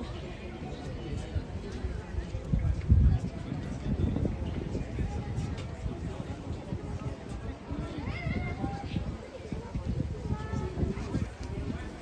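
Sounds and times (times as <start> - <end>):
indistinct voices outdoors: 0.0 - 12.0.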